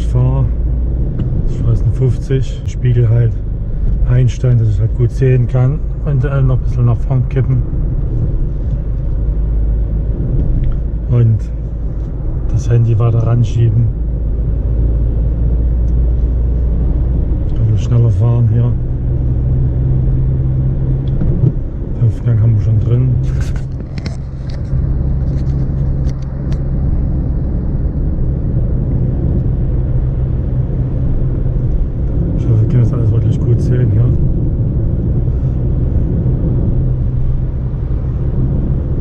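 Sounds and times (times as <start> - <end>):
car engine and road drone: 0.0 - 39.0.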